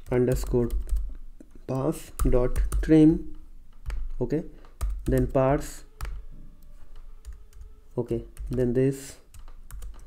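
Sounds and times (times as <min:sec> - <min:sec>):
computer keyboard keystrokes: 0:00.0 - 0:01.2, 0:02.1 - 0:03.0, 0:03.7 - 0:05.4, 0:06.0 - 0:06.3, 0:06.9 - 0:07.7, 0:08.3 - 0:10.0.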